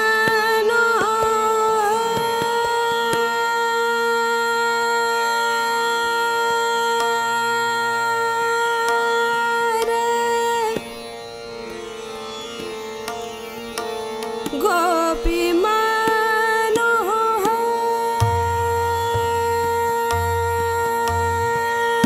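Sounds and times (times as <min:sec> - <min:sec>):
harmonium: 0:00.0 - 0:22.0
tanpura drone: 0:00.0 - 0:22.0
woman singing long note: 0:14.7 - 0:22.0.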